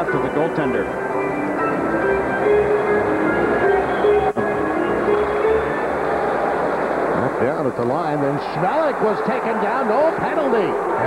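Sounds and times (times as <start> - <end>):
organ music held notes: 0.0 - 7.3
arena crowd noise: 1.7 - 11.0.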